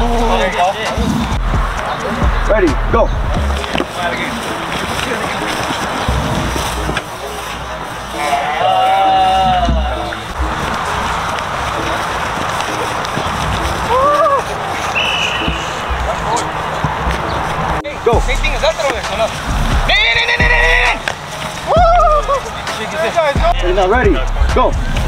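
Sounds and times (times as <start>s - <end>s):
steady rushing noise: 0.0s - 25.0s
players shouting: 3.4s - 24.0s.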